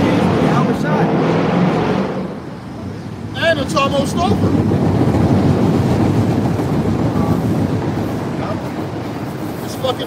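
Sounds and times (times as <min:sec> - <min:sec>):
heavy vehicle rumbling past: 0:00.0 - 0:09.9.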